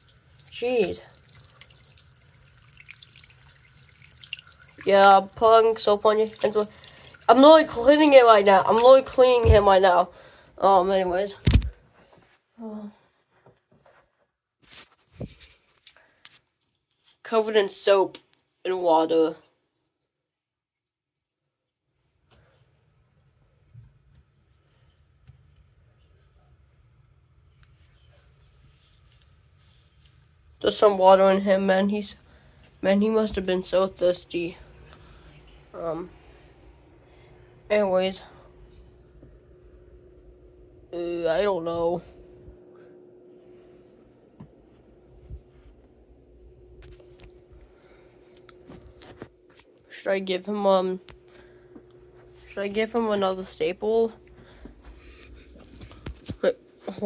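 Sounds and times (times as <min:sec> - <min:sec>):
steady low hum: 0:22.4 - 0:57.0.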